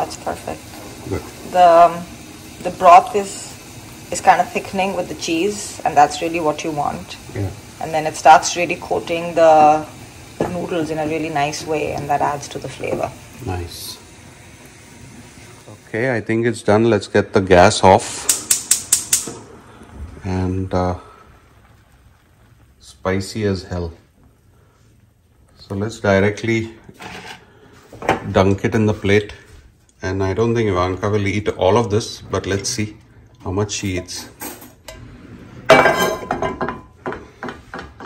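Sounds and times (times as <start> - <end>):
gas burner hiss: 0.0 - 38.0
gas igniter clicking: 18.2 - 19.4
frying pan clanking on grates: 18.2 - 19.5.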